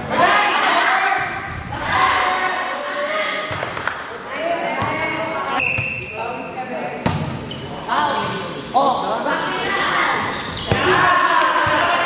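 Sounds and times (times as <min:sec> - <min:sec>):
players shouting in echoing gym: 0:00.0 - 0:06.1, 0:07.5 - 0:12.0.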